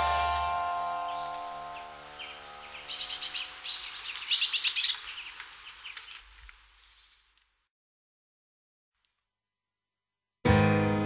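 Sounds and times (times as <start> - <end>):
song's last chord ringing: 0.0 - 2.9, 10.5 - 11.0
birds chirping: 0.0 - 7.4.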